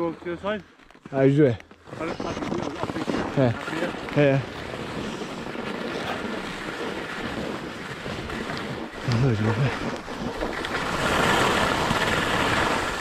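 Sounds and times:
skis sliding over snow: 0.0 - 13.0
wind on microphone: 1.9 - 13.0.

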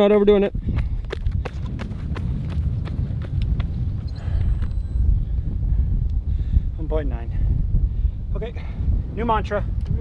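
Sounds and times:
wind rumble on microphone: 0.0 - 10.0
running footsteps on asphalt: 0.4 - 5.8.

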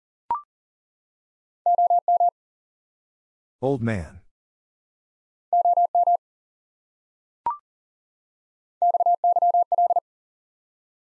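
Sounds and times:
morse code sidetone beeps: 1.7 - 2.3, 5.6 - 6.2, 8.8 - 10.0.

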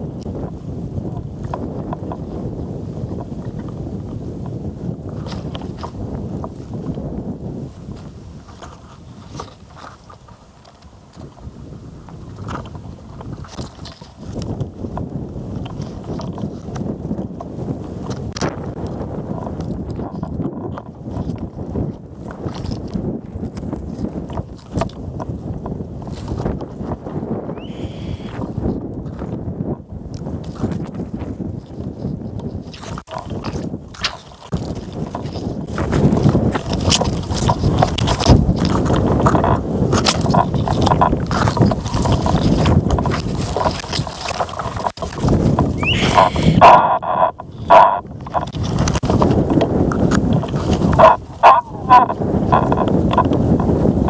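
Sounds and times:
wind buffeting microphone: 0.0 - 54.0
leaves and twigs brushing: 32.6 - 53.1
short high chirp: 45.8 - 46.6.

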